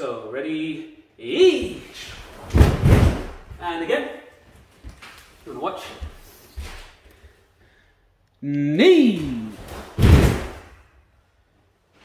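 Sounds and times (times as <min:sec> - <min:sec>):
bare feet thudding on wooden floor: 0:02.4 - 0:03.6.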